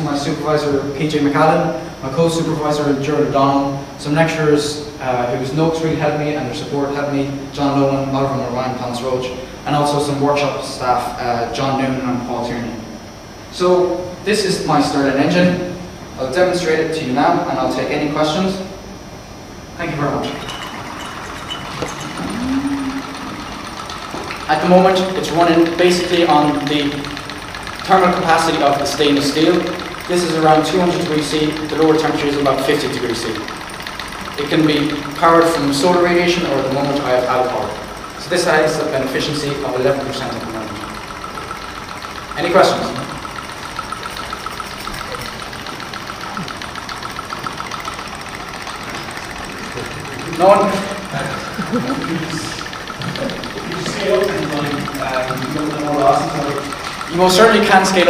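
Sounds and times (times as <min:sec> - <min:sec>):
engine mechanical whir: 0:13.1 - 0:58.0
hum rising in pitch: 0:20.2 - 0:25.1.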